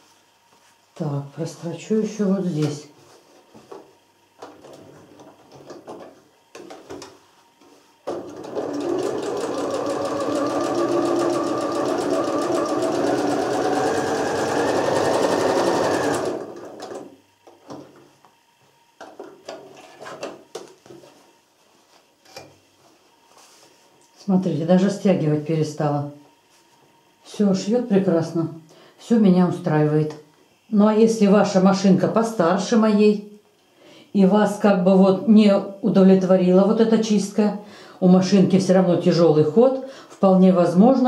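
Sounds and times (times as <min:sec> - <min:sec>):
sewing machine stitching: 0:08.1 - 0:17.1.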